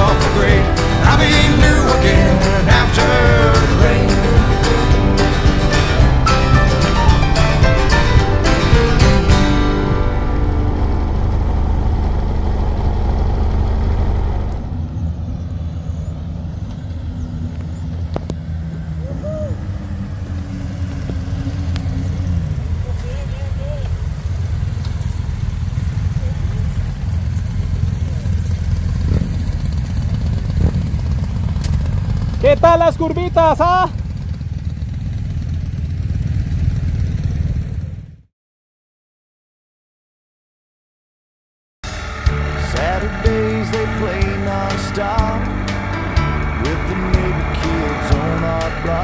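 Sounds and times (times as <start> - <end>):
background music: 0.0 - 12.3, 41.8 - 49.0
motorcycles riding past: 0.0 - 38.2
motorcycle engine rumble: 0.0 - 38.3, 41.8 - 49.0.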